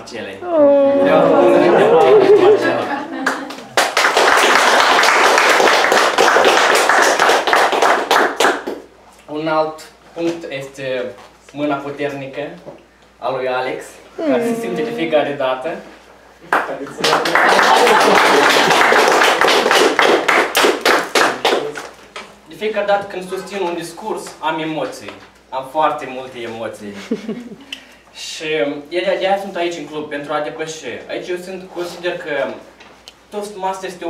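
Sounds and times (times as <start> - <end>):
audience applauding: 1.1 - 8.8, 16.5 - 21.9.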